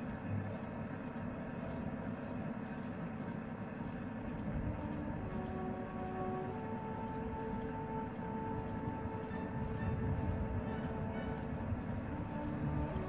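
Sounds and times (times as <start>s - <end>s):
vehicle road noise rumble: 0.0s - 13.0s
sustained musical notes: 4.3s - 13.0s.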